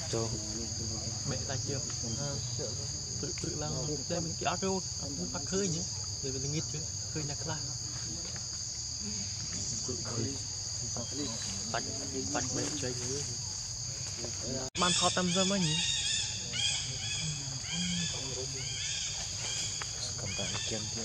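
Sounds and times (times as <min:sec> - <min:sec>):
insect chorus: 0:00.0 - 0:21.0.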